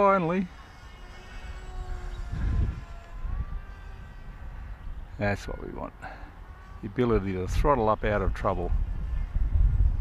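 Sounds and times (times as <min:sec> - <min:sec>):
small electric motor whine: 0:00.0 - 0:10.0
wind rumble on microphone: 0:00.7 - 0:10.0.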